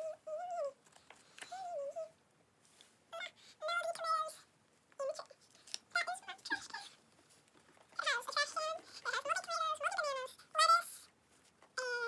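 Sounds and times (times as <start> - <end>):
child's high-pitched voice: 0.0 - 0.8, 1.5 - 2.2, 3.2 - 7.0, 8.0 - 11.1, 11.8 - 12.0.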